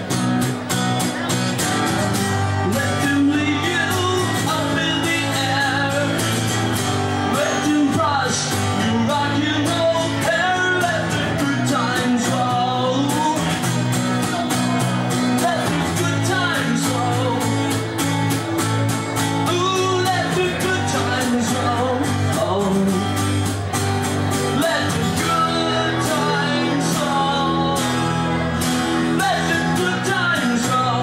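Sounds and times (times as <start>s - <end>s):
amplified electric guitar: 0.0s - 31.0s
person singing: 2.6s - 6.6s, 19.3s - 23.4s, 24.4s - 31.0s.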